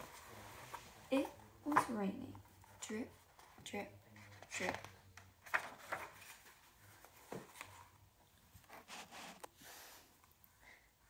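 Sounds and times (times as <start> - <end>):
book pages rustling: 0.0 - 3.6, 4.2 - 9.6.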